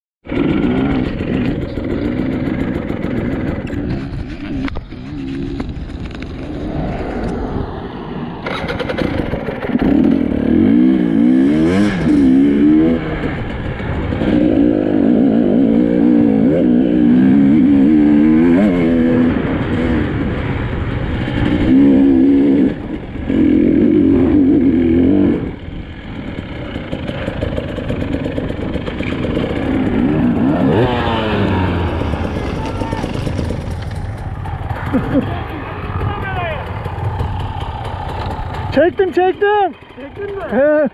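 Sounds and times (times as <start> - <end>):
dirt bike engine revving: 0.3 - 40.9.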